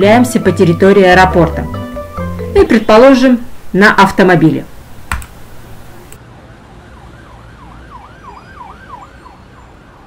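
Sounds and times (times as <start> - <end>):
faint siren wailing: 6.6 - 10.0.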